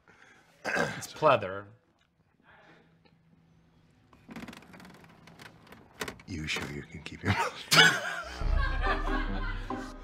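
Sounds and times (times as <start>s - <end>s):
chair creaking: 4.1s - 6.9s.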